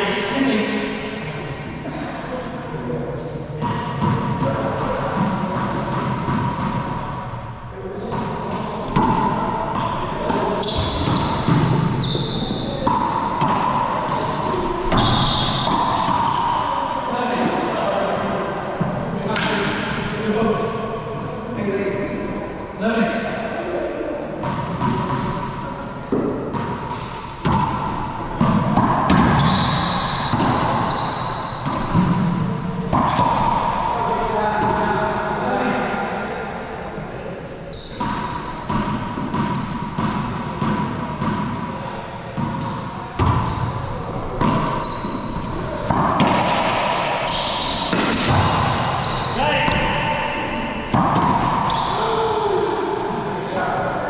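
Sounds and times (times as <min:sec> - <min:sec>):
racquetball hits echoing: 0:03.6 - 0:21.4, 0:23.9 - 0:36.2, 0:37.0 - 0:54.0
sneaker squeaks on hardwood: 0:09.8 - 0:13.1, 0:14.1 - 0:16.5, 0:29.1 - 0:32.0, 0:37.7 - 0:38.3, 0:39.2 - 0:40.2, 0:44.5 - 0:46.0, 0:47.2 - 0:49.4, 0:51.6 - 0:52.2.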